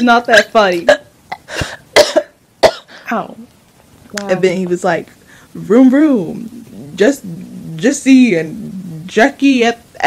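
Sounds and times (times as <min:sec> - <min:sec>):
woman coughing: 0:00.9 - 0:03.1.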